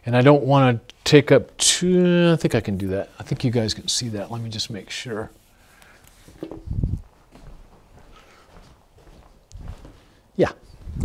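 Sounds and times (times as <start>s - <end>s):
footsteps on hard floor: 6.2s - 10.1s.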